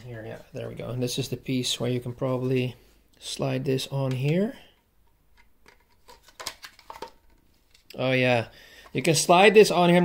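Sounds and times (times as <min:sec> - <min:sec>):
plastic parts knocking and clicking: 0:04.0 - 0:07.9.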